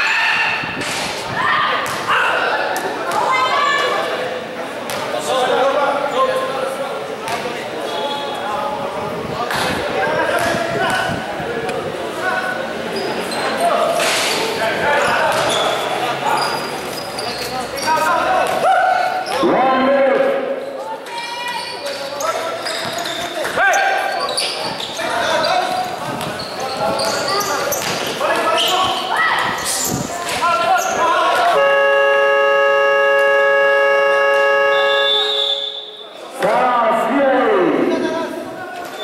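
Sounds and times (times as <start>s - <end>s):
voices in a gym: 0.0s - 39.0s
gym buzzer long tone: 31.6s - 35.4s.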